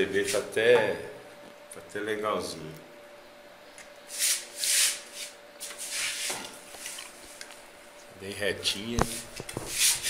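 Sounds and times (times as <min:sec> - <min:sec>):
faint steady hum: 0:00.0 - 0:10.0
rubbing scrapes: 0:04.1 - 0:07.0, 0:09.1 - 0:10.0.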